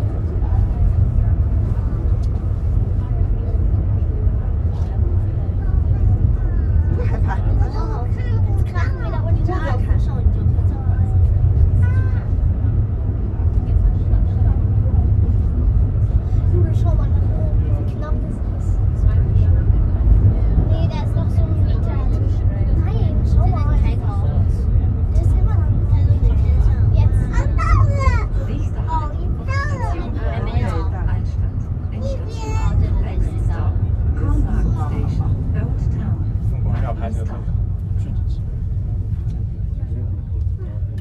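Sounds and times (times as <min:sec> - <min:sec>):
funicular car rumbling on track: 0:00.0 - 0:41.0
passengers chattering: 0:00.0 - 0:41.0.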